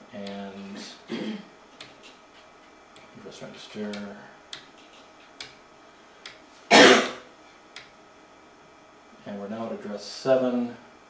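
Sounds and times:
man coughing: 0.8s - 1.5s, 6.7s - 7.2s
toggle switch clicks: 5.3s - 5.6s, 7.7s - 8.0s.

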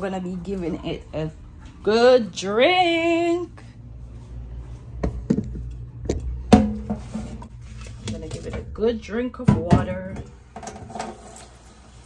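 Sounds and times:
low steady hum: 0.0s - 11.6s
knocks and clunks of handling: 5.0s - 8.7s.

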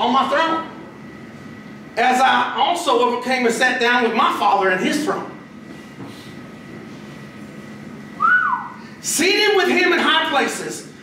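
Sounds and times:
short whistle sliding down: 8.2s - 8.8s.

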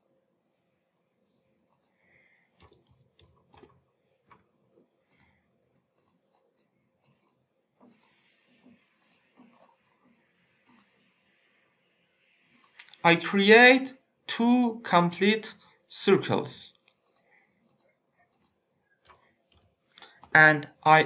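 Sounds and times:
computer mouse clicks: 1.7s - 11.2s, 12.5s - 13.0s, 16.8s - 20.4s.

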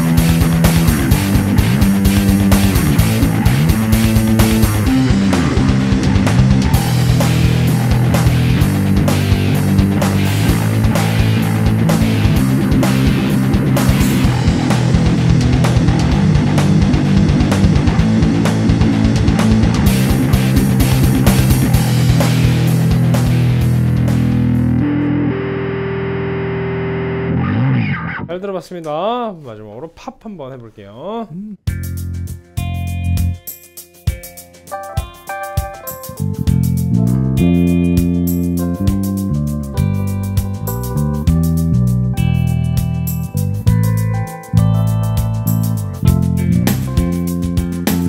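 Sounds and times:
rapid kick drum hits: 0.0s - 24.6s
overdriven electric bass riff: 0.0s - 28.3s, 31.6s - 48.0s
heavy metal backing track: 0.0s - 28.6s, 31.6s - 48.0s.

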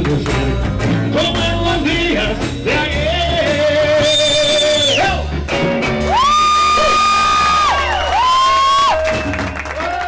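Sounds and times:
steady held bass: 0.0s - 9.8s
rockabilly band playing: 0.0s - 10.0s.

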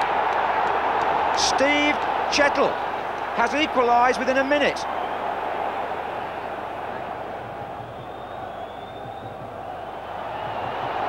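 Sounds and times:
stadium crowd voices: 0.0s - 11.0s.

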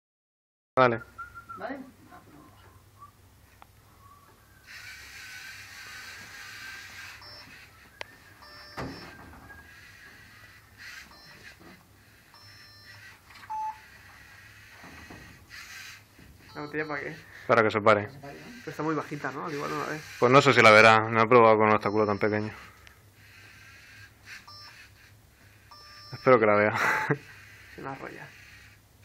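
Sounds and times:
robot servo motors whirring: 4.6s - 16.7s, 18.2s - 20.8s
short electronic beeps: 6.6s - 9.8s, 10.8s - 11.7s, 12.3s - 13.9s, 16.4s - 17.2s, 21.8s - 22.8s, 24.4s - 24.9s, 25.6s - 26.4s.

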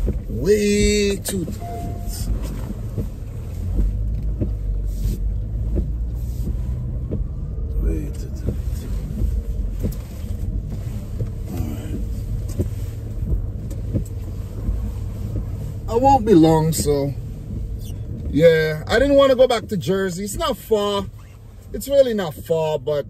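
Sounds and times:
car engine and road rumble: 0.0s - 23.0s.

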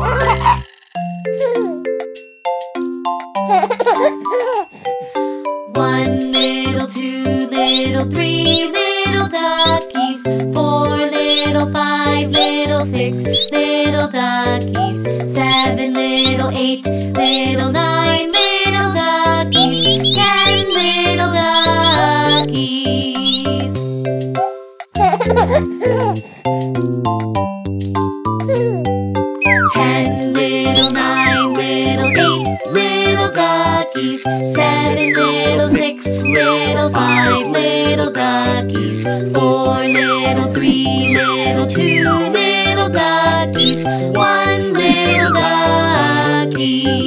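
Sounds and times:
child giggling: 0.0s - 0.6s, 1.4s - 1.8s, 3.5s - 4.7s, 25.0s - 26.2s, 28.5s - 28.9s, 31.1s - 32.5s
baby giggling: 0.0s - 0.7s, 1.4s - 1.8s, 3.4s - 4.9s, 7.5s - 10.3s, 12.2s - 12.7s, 14.8s - 22.6s, 24.4s - 26.3s, 28.4s - 33.2s, 35.0s - 37.8s, 39.9s - 42.9s, 44.7s - 46.1s
bouncy children's music: 0.0s - 47.0s.

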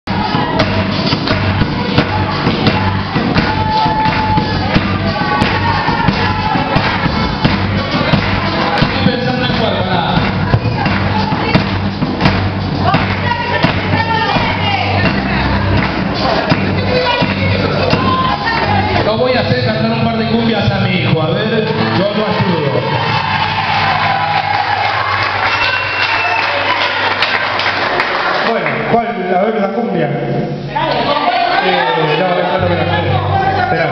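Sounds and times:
crowd noise: 0.0s - 33.9s
sharp drum hits: 0.1s - 20.0s
live band playing: 0.1s - 27.5s.

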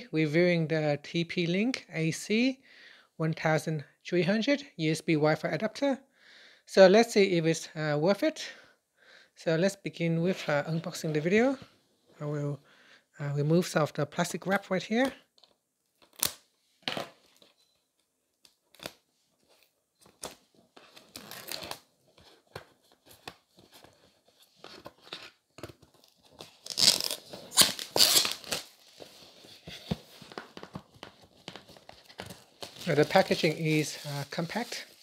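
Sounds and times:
plastic wrap tearing and crackling: 20.2s - 21.9s, 25.2s - 29.0s, 30.2s - 35.0s
shrink wrap crinkling: 24.6s - 35.0s.

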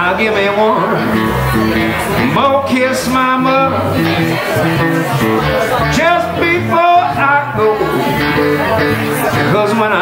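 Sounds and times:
electric bass: 0.0s - 10.0s
electric guitar: 0.0s - 10.0s.

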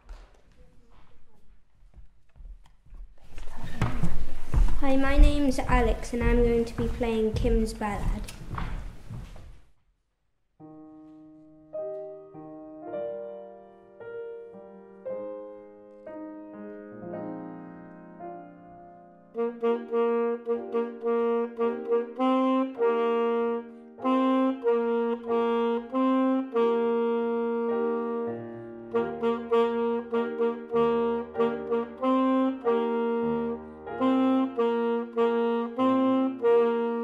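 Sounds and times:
piano accompaniment: 3.2s - 9.4s, 10.6s - 37.0s
saxophone melody: 19.2s - 37.0s.

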